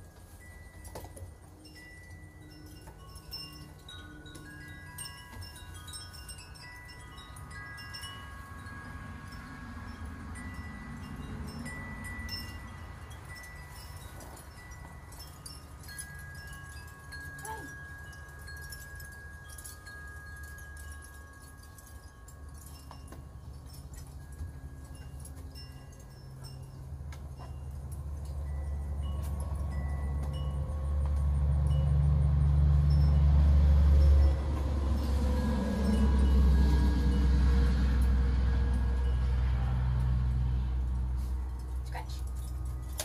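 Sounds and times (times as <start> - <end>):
low steady rumble: 0.0 - 43.0
wind chimes ringing: 0.0 - 43.0.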